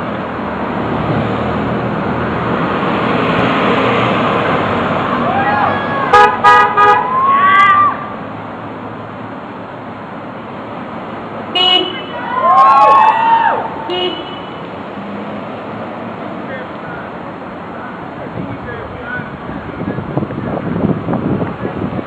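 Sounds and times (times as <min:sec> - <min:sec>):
cars passing: 0:00.0 - 0:22.0
people whooping and cheering: 0:05.2 - 0:06.1, 0:07.0 - 0:08.1, 0:12.1 - 0:13.9
car horn toots: 0:06.1 - 0:07.1, 0:11.6 - 0:12.3, 0:13.9 - 0:14.7.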